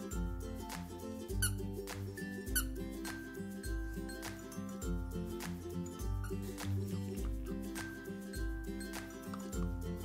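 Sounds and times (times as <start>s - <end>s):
background music with steady beat: 0.0s - 10.0s
squeaky toy squeaking: 1.4s - 1.6s, 2.5s - 2.8s.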